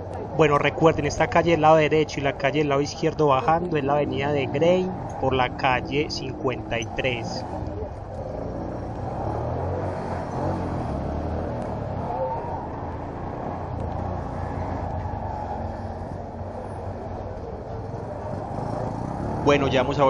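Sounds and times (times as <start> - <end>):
motorcycle engine rumbling: 0.0 - 20.0
street traffic: 0.0 - 20.0.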